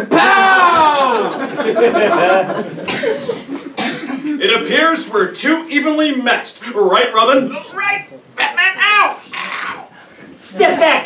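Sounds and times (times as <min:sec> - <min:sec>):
strained growl-like cry: 0:09.2 - 0:10.0.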